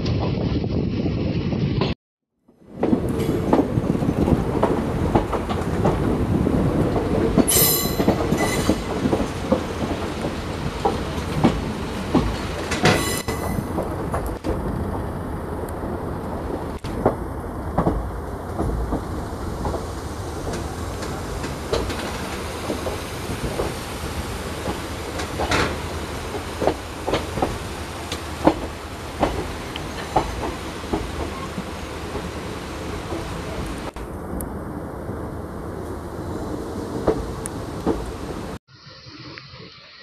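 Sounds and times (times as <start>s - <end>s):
train rumbling along track: 0.0s - 40.0s
wheels clicking over rail joints: 2.7s - 34.5s.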